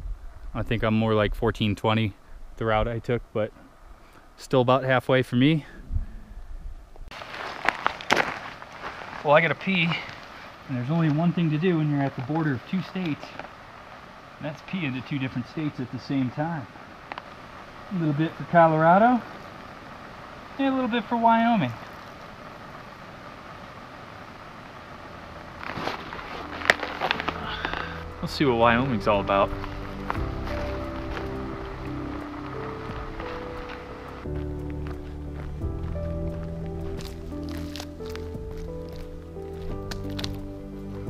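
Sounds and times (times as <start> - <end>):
low rumble on microphone: 0.0 - 4.0, 5.6 - 7.1, 25.0 - 41.0
footsteps through grass and dirt: 7.1 - 19.4, 25.1 - 41.0
music with low held notes: 25.2 - 41.0.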